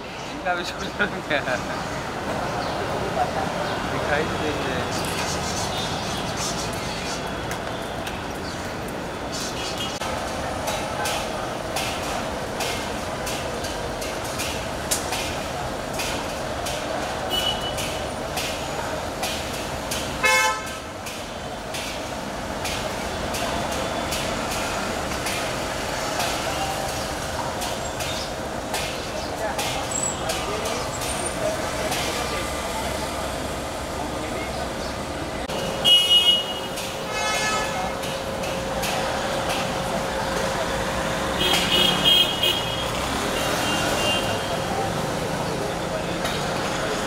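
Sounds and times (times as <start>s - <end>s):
city street traffic: 0.0s - 47.0s
vehicle horns honking: 17.3s - 17.9s, 20.2s - 20.8s, 35.5s - 38.0s, 41.3s - 44.6s.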